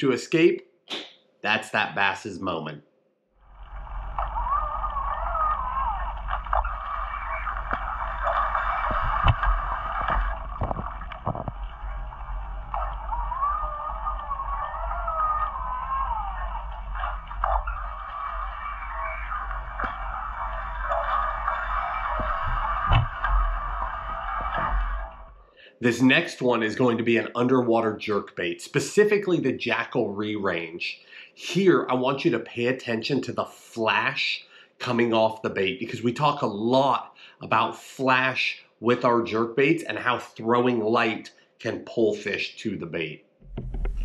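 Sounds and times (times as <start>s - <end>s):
wavering whine: 3.4s - 25.4s
muffled underwater hum: 3.5s - 25.4s, 43.4s - 44.0s.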